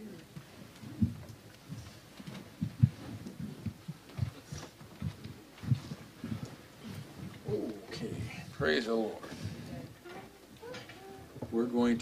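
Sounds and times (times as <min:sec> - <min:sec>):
low thumps of people shifting: 0:00.3 - 0:12.0.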